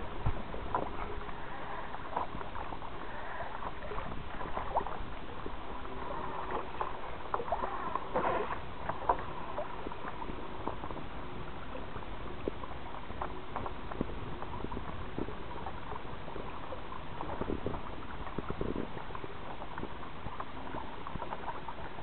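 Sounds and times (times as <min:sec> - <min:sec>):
water splashing against kayak hull: 0:00.0 - 0:22.0.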